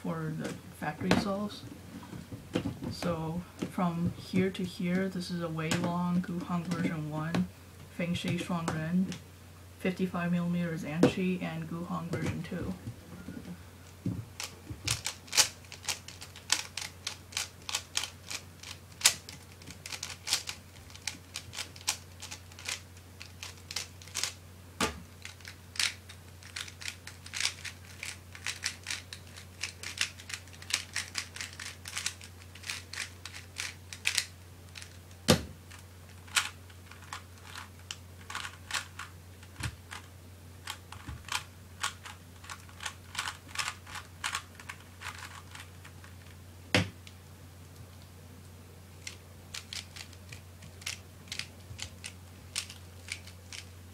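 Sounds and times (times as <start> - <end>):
steady low hum: 0.0 - 53.9.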